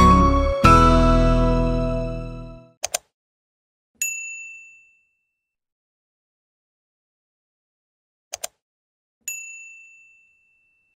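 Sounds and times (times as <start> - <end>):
bright bell ding: 9.3 - 10.9.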